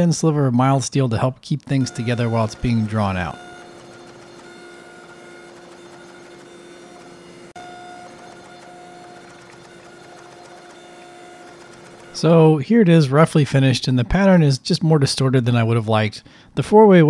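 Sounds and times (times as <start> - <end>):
press motor and pump humming: 1.8 - 12.6.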